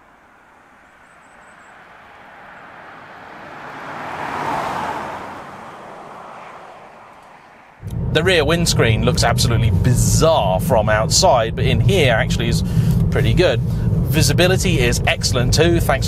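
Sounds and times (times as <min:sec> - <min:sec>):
car driving past: 0:00.0 - 0:16.0.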